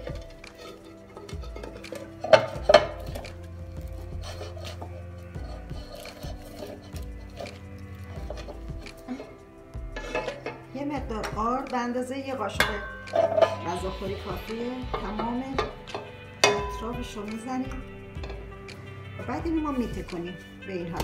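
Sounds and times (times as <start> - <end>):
metal pan clanking: 0.0 - 3.5, 4.2 - 9.4, 10.0 - 11.6, 12.4 - 18.6
soft background music: 0.0 - 21.0.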